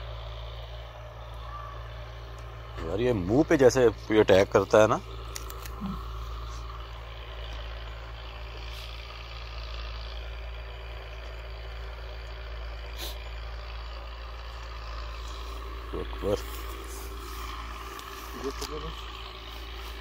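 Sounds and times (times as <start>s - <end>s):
engine running steadily: 0.0s - 20.0s.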